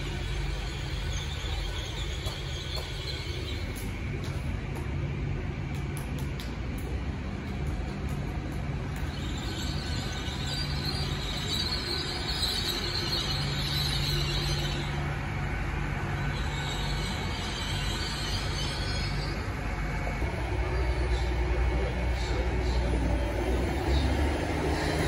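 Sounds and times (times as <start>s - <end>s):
wheels squealing on rails: 0.0s - 4.2s, 9.0s - 25.0s
train engines humming: 0.0s - 25.0s.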